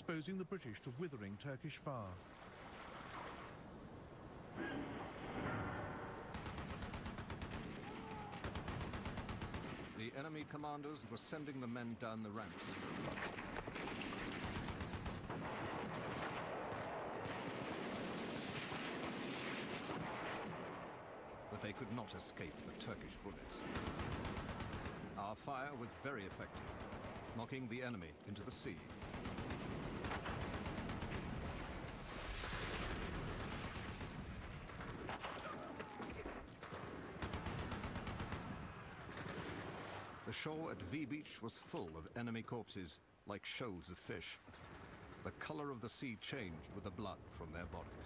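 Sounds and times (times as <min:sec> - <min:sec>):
rifle and machine-gun fire: 0:05.3 - 0:10.1, 0:12.5 - 0:21.0, 0:23.5 - 0:25.2, 0:26.4 - 0:27.6, 0:28.6 - 0:35.4, 0:36.6 - 0:39.5
rapid gunfire: 0:06.3 - 0:10.0, 0:12.7 - 0:19.1, 0:23.6 - 0:25.3, 0:26.4 - 0:27.6, 0:28.6 - 0:35.4, 0:37.1 - 0:39.2.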